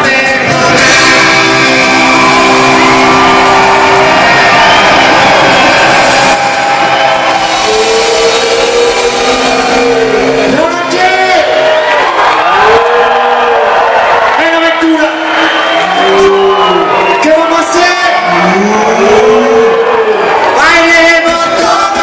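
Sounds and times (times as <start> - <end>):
crowd cheering: 0.0 - 22.0
people shouting: 1.0 - 14.4.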